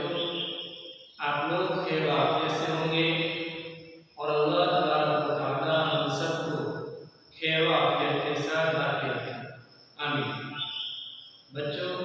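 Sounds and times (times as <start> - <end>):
man chanting: 0.0 - 6.8, 7.4 - 9.4, 10.0 - 10.5, 11.5 - 12.0.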